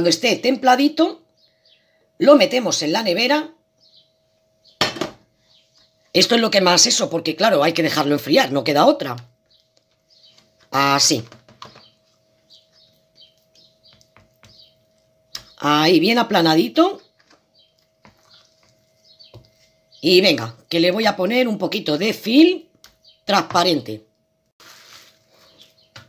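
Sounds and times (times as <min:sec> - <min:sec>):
faint steady hum: 0:00.0 - 0:26.0
high bird-like chirps: 0:17.1 - 0:20.0.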